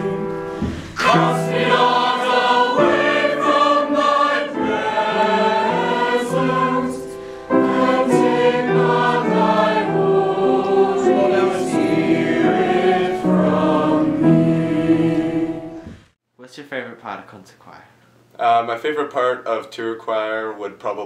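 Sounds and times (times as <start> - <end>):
mixed choir singing: 0.0 - 16.0.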